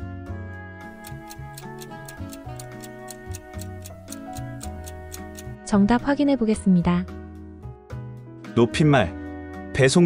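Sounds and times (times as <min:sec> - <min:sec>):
light background music: 0:00.0 - 0:10.0
clock ticking quickly: 0:00.9 - 0:05.6.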